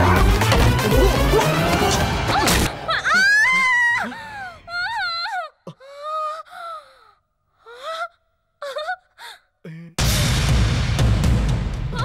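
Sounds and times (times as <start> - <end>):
dramatic film music with drum hit: 0.0 - 3.1, 10.0 - 12.0
woman moaning and gasping: 0.8 - 10.0.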